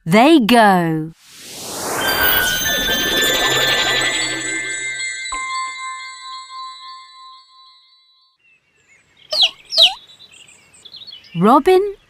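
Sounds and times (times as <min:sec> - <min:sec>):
faint high twittering: 0:01.2 - 0:05.3
held chime note: 0:01.3 - 0:08.3
loud bird chirps: 0:08.4 - 0:11.4.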